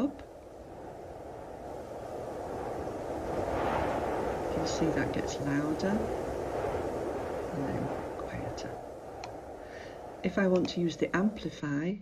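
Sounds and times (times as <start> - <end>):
low rushing wind: 0.0 - 12.0.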